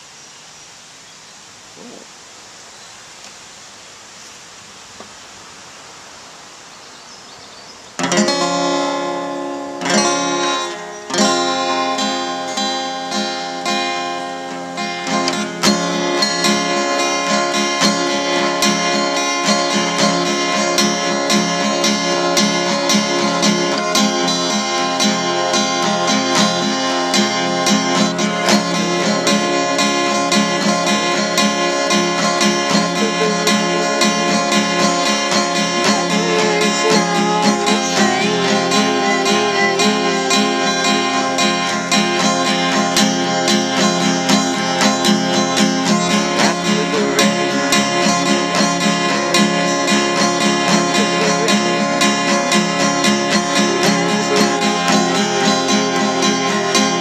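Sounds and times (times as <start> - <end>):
acoustic guitar strummed: 8.0 - 57.0.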